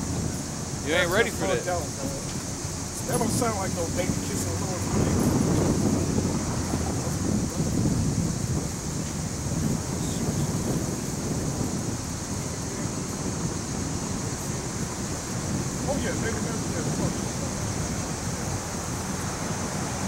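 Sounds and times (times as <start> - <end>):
steady high hiss: 0.0 - 20.0
traffic rumble: 0.0 - 20.0
wind buffeting microphone: 0.0 - 20.0.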